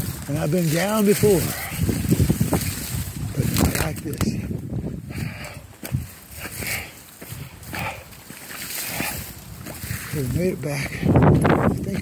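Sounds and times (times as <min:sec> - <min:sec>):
footsteps through dry grass: 0:00.0 - 0:12.0
wind buffeting microphone: 0:00.0 - 0:12.0.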